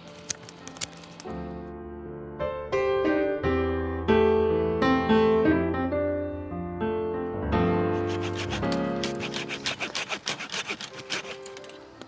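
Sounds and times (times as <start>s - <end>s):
soft piano music: 0.0s - 10.2s
vine canes scraping and dragging: 8.1s - 12.0s.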